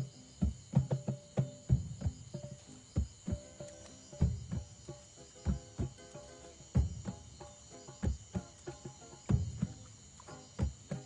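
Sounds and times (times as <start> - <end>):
crickets chirping: 0.0 - 11.0
hand drum strikes: 0.0 - 11.0.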